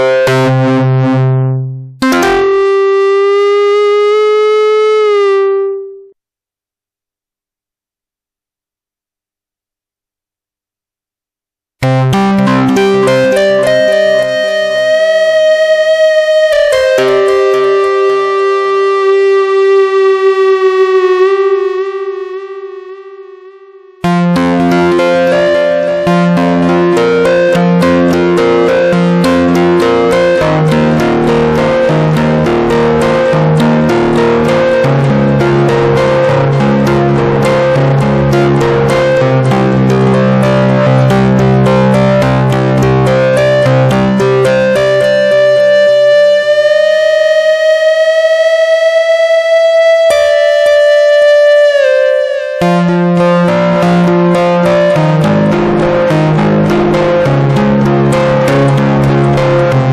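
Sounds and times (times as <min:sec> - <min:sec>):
synthesizer lead note bending: 0:00.0 - 0:06.2, 0:11.8 - 0:59.9
synthesizer repeated chords: 0:00.0 - 0:06.2, 0:11.8 - 0:59.9.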